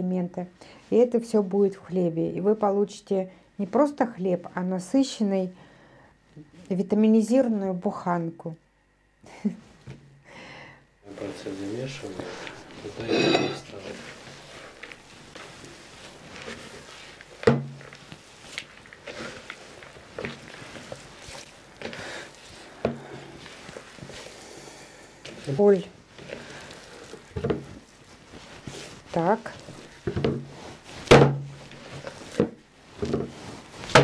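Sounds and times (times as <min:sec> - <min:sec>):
hands kneading sticky dough: 0:13.7 - 0:34.0
knocks on plastic bowl: 0:31.1 - 0:31.5.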